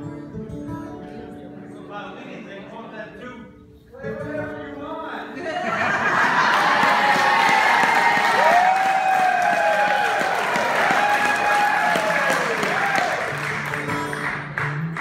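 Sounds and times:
acoustic guitar notes: 0:00.0 - 0:05.7, 0:13.2 - 0:15.0
audience applauding and cheering: 0:06.0 - 0:15.0
long whoops: 0:06.4 - 0:13.4.

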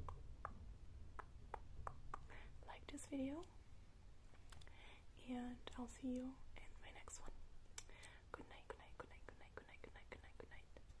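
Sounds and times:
person whispering: 0:02.6 - 0:03.5, 0:05.2 - 0:07.4, 0:08.2 - 0:10.9.

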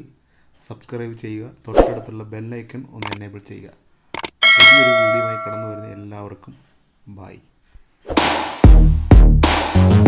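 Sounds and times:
quick clicks: 0:03.0 - 0:03.2, 0:04.1 - 0:04.4
bright bell ding: 0:04.4 - 0:06.0.

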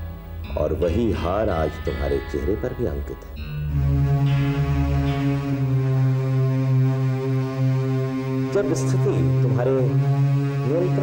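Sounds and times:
long low steady note: 0:00.0 - 0:11.0.

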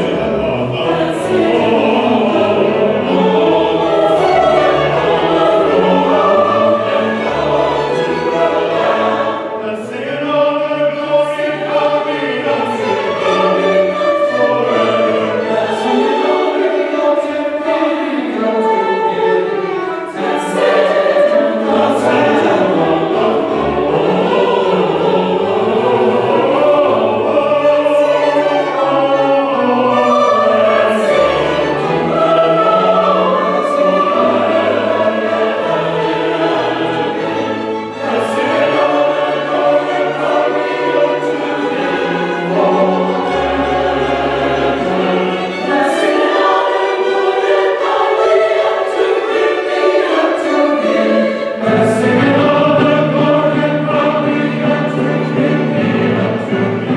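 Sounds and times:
choir singing: 0:00.0 - 0:56.9
strings: 0:00.0 - 0:56.9.

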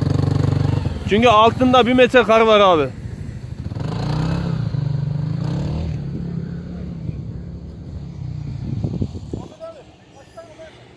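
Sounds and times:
utility vehicle engine running hard: 0:00.0 - 0:09.5.

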